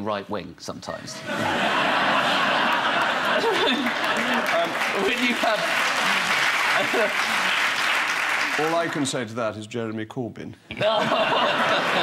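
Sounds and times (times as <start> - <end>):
audience laughing: 1.2 - 8.9, 10.7 - 12.0
audience applauding: 2.0 - 9.2, 11.5 - 12.0
man speaking: 8.6 - 10.6.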